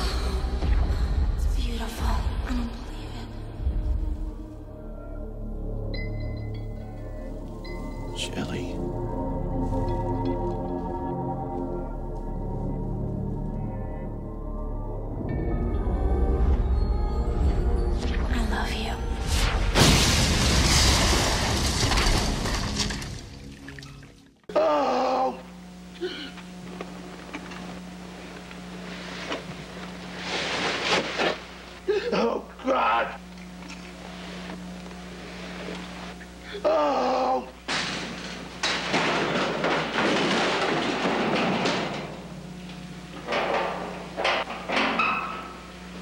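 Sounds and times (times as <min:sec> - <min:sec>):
crash with clattering debris: 0:19.6 - 0:23.4, 0:37.7 - 0:42.3.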